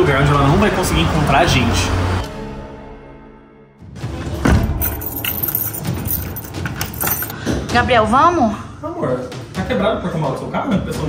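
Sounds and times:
keys jangling: 0:04.4 - 0:07.4.

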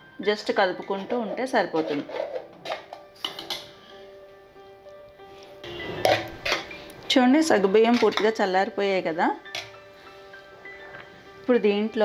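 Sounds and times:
spoon scraping steel pot: 0:00.8 - 0:03.7, 0:05.6 - 0:06.9.

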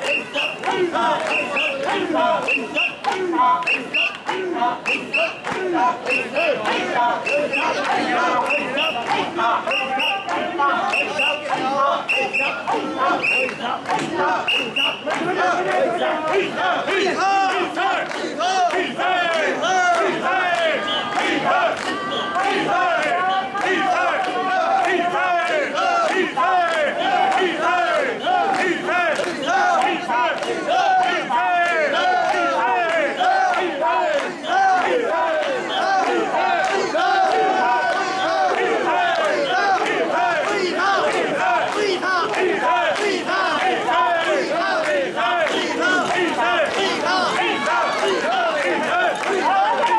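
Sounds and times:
crowd chanting in unison: 0:00.0 - 0:49.9.

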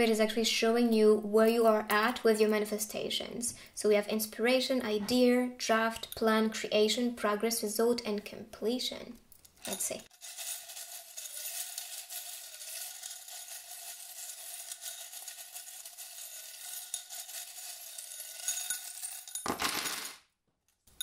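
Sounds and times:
metal charms rattling in cup: 0:09.6 - 0:19.5
charms scattering on board: 0:09.7 - 0:20.3.

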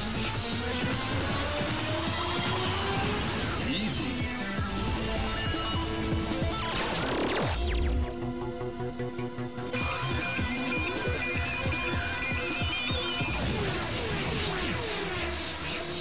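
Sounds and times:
electronic cartoon music: 0:00.0 - 0:16.0.

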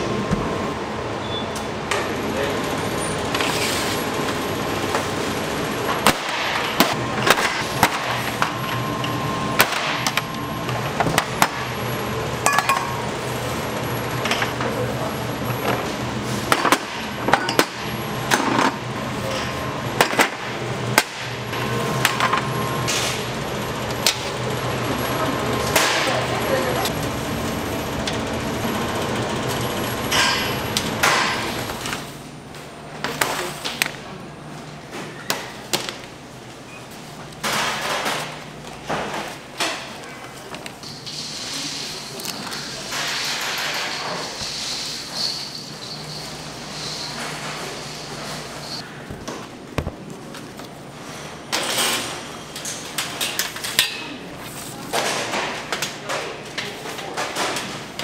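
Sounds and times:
steady machine hum: 0:00.0 - 0:56.6.

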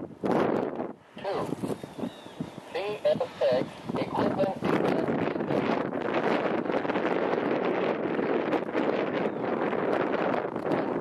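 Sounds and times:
radio scanner static hiss: 0:01.1 - 0:05.7.

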